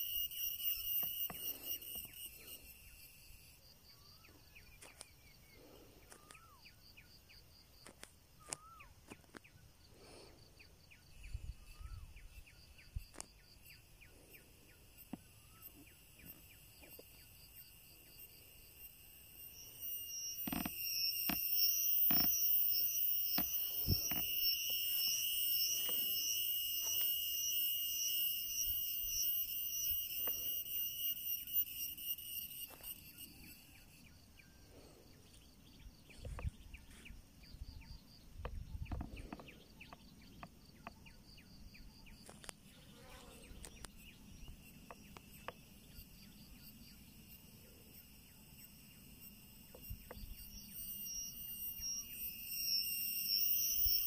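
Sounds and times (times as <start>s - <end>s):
cicada buzzing: 0.0s - 5.0s, 11.0s - 34.5s, 42.7s - 54.0s
faint bird chirps: 0.0s - 54.0s.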